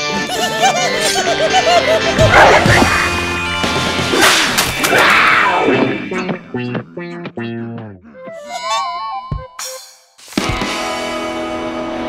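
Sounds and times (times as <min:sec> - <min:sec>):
cartoon music: 0:00.0 - 0:03.6, 0:05.5 - 0:09.9.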